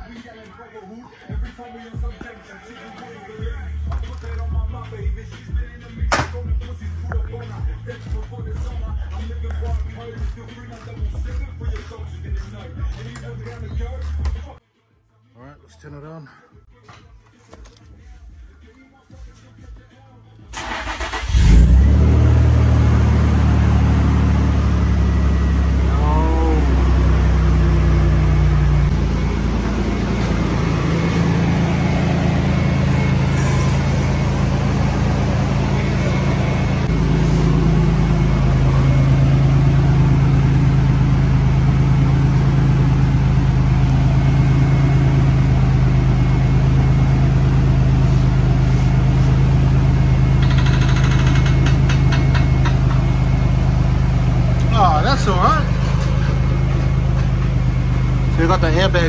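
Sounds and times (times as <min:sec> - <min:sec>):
car engine starting and idling: 0:20.4 - 0:59.0.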